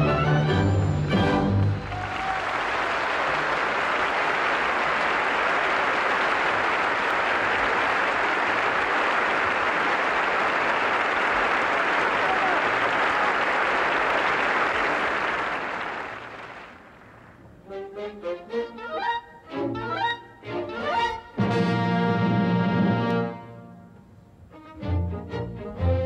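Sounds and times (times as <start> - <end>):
orchestral music: 0.0 - 2.1, 17.6 - 26.0
audience applauding: 1.1 - 17.4.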